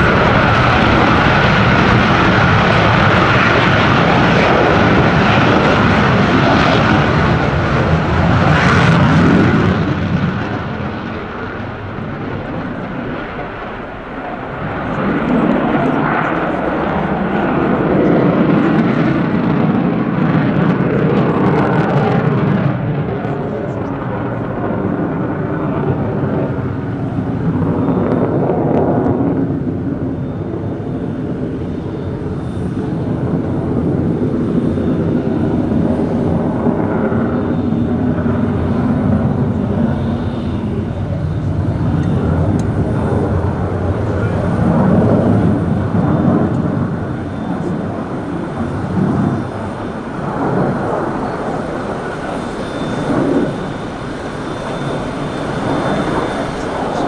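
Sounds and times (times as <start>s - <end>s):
jet roar overhead: 0.0s - 57.0s.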